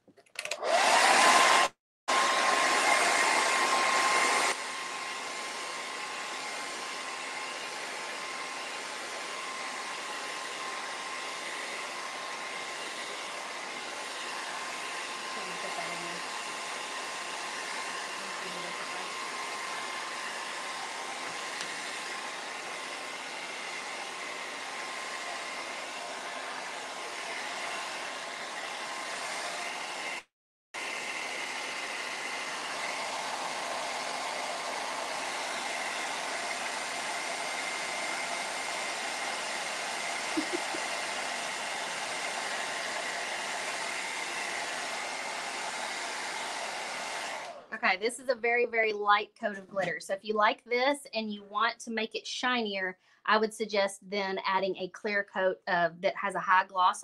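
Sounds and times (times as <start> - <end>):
hair dryer blowing: 0.4 - 50.0.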